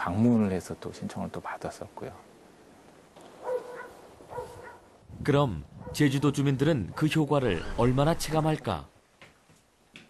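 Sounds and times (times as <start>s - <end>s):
dog barking: 3.4s - 4.9s, 5.8s - 6.0s.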